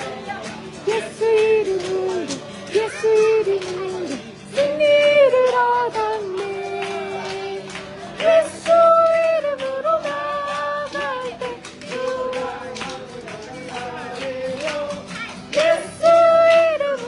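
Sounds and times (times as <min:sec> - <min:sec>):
acoustic guitar strumming: 0:00.0 - 0:17.0
hands clapping along: 0:00.0 - 0:17.0
people singing worship song: 0:04.2 - 0:17.0.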